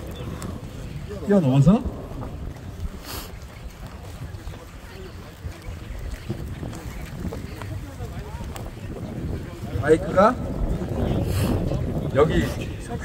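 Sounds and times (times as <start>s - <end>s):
faint voices: 0.0s - 13.0s
wind buffeting microphone: 0.0s - 13.0s.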